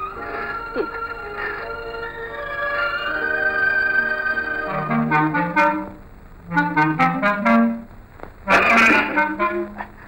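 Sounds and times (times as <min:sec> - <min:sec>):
film score sustained notes: 0:00.0 - 0:07.8.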